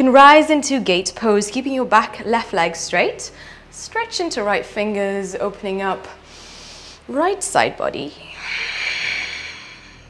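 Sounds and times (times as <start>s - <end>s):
woman breathing out: 8.3s - 10.0s.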